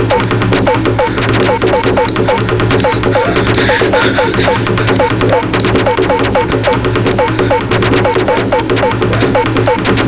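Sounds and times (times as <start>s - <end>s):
fast percussion ticks: 0.0s - 10.0s
low steady drone: 0.0s - 10.0s
swooping synth notes: 0.0s - 10.0s.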